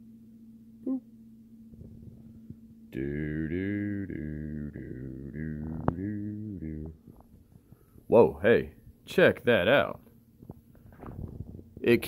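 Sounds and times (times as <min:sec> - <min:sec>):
faint low hum: 0:00.0 - 0:12.0
man singing a short note: 0:02.9 - 0:07.0.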